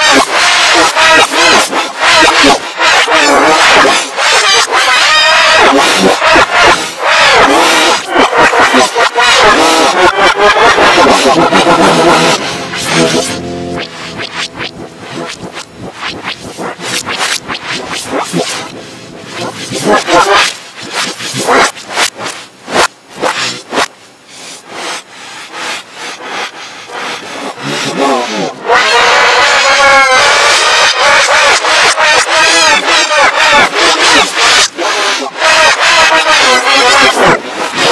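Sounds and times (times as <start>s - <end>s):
distorted reversed screaming: 0.0s - 23.9s
distorted reversed shouting voice: 10.7s - 21.6s.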